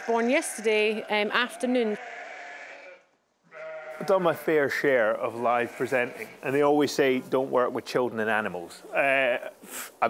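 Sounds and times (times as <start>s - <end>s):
sheep bleating: 0.0s - 6.6s.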